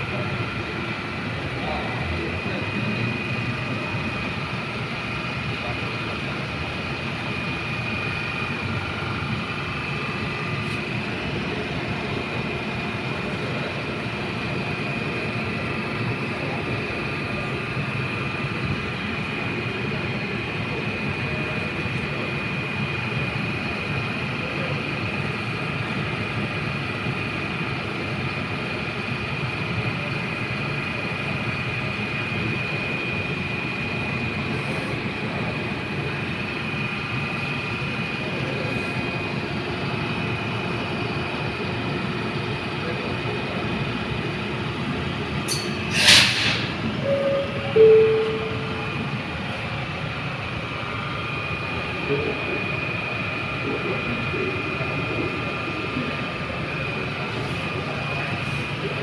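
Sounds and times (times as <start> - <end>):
train rumble and hum: 0.0 - 59.0
high-pitched whine: 45.5 - 49.7.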